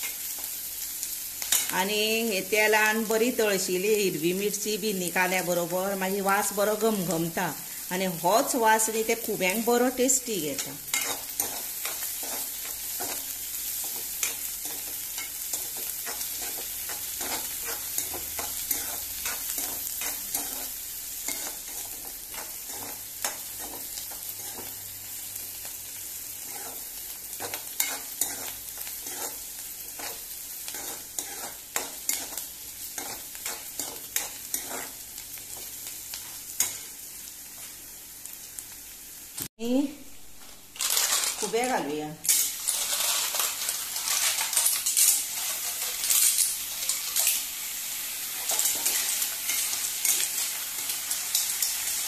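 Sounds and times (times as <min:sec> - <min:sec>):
onions sizzling in hot oil: 0:00.0 - 0:52.0
spatula scraping and tapping pan: 0:10.6 - 0:24.8, 0:26.4 - 0:36.9.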